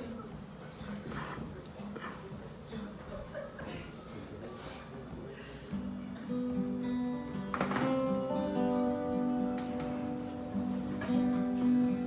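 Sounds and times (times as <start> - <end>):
acoustic guitars playing: 5.7 - 12.0.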